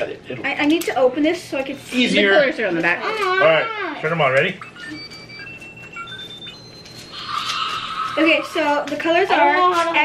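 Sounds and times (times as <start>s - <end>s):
high electronic toy beeps: 4.5s - 8.4s.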